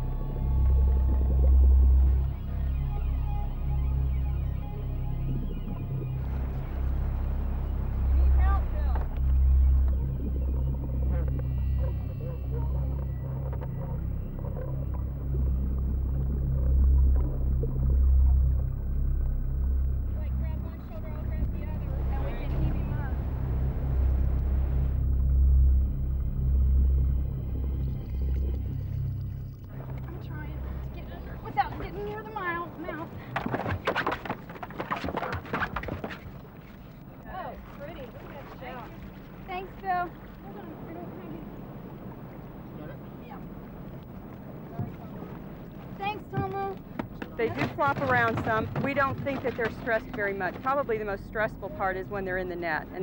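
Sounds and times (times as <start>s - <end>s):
boat motor heard underwater: 0.0s - 53.0s
water: 0.0s - 53.0s
wind: 0.0s - 53.0s
people's voices: 7.8s - 10.0s, 20.2s - 24.9s, 29.7s - 33.4s, 37.3s - 53.0s.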